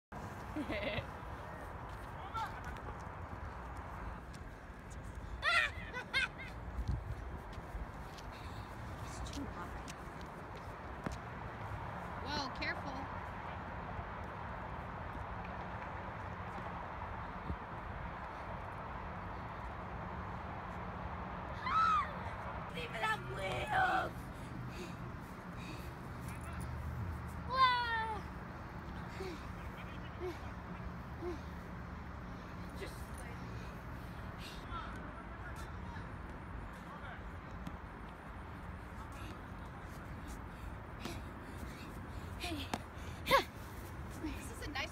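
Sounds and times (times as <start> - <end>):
girl's high-pitched cry: 5.4 - 5.9, 21.6 - 22.2.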